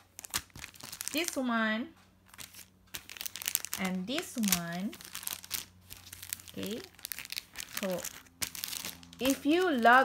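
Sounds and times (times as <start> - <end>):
plastic packaging crinkling: 0.0 - 1.6, 2.2 - 10.0.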